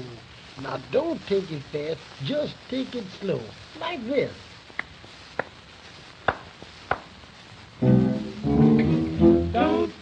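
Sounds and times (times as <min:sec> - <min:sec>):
record surface hiss: 0:00.0 - 0:10.0
sharp record clicks: 0:04.6 - 0:09.2
band playing: 0:07.8 - 0:10.0.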